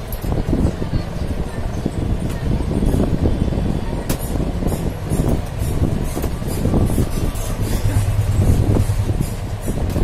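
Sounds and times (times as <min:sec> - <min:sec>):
steady low rumble: 0:06.7 - 0:10.0.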